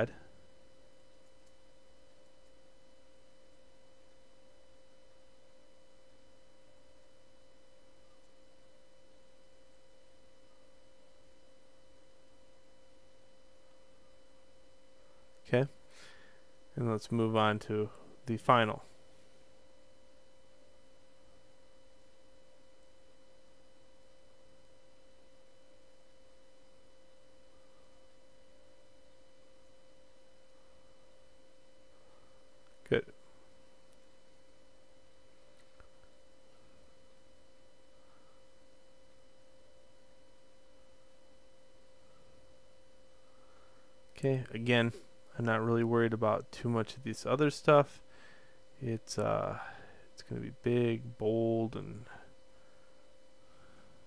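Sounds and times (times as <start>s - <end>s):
faint electrical hum: 0.0s - 54.0s
faint clicks: 1.2s - 2.6s.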